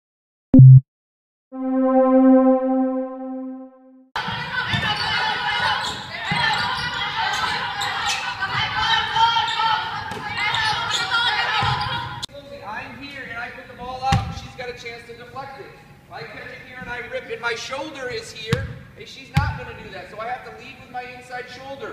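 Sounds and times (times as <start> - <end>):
synthesized logo tone: 0.6 - 0.8, 1.6 - 4.1.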